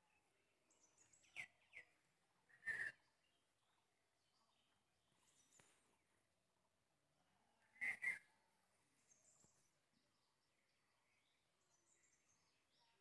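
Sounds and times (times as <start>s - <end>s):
faint high bird chirps: 0.0s - 5.8s, 7.7s - 13.0s.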